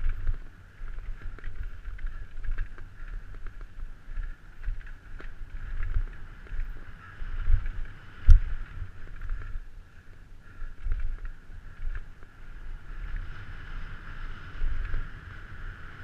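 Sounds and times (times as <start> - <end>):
bike rattling over bumps: 0.0 - 16.0
wind buffeting microphone: 0.0 - 16.0.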